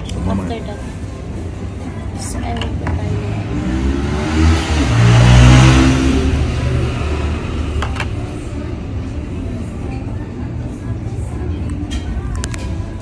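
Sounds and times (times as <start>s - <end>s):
vehicle engine accelerating past: 3.1s - 7.8s.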